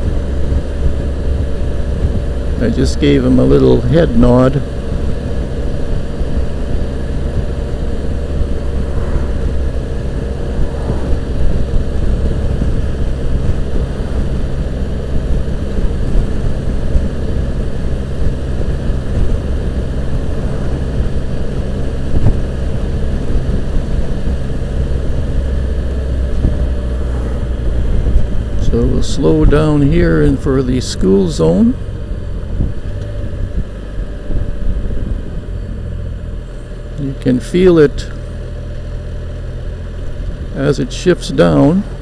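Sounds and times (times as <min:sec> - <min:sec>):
wind rumbling on microphone: 0:00.0 - 0:39.3
engine running steadily: 0:00.0 - 0:42.0.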